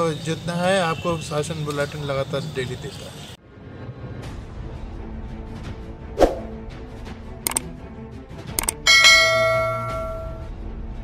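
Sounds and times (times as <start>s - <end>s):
mouse double click: 8.6s - 8.8s
bright bell chime: 8.9s - 10.5s.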